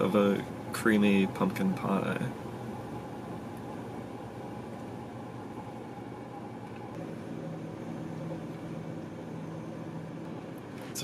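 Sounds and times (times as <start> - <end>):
car engine idling: 0.0 - 11.0
low steady drone: 0.0 - 11.0
ventilation fan hum: 0.0 - 11.0.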